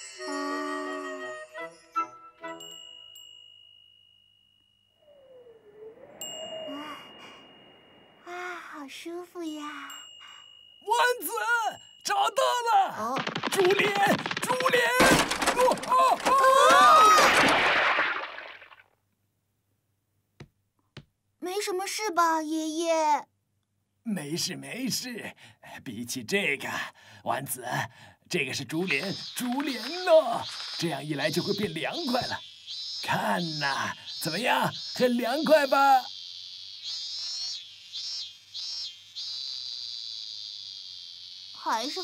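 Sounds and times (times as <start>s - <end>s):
cicadas buzzing: 4.9s - 12.6s, 28.5s - 42.0s
wavering cry: 5.0s - 8.4s
water splash: 13.2s - 18.9s.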